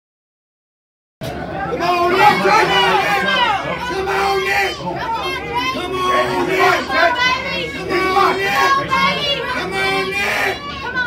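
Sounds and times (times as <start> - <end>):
crowd talking and calling out: 1.2 - 11.0.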